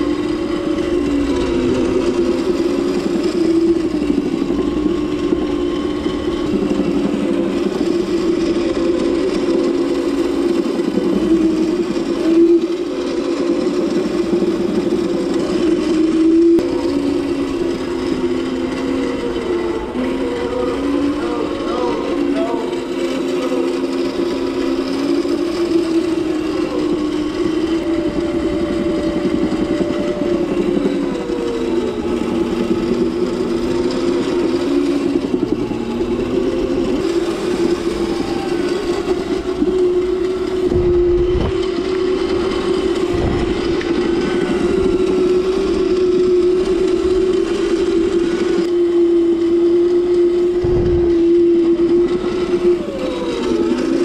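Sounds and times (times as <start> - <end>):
electric motor whining: 0.0 - 54.0
low thuds: 50.6 - 51.3.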